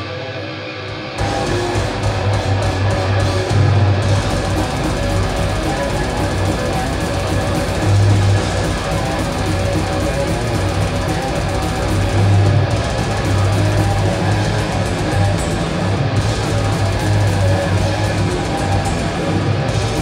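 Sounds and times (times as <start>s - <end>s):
death metal band playing live: 0.0s - 20.0s.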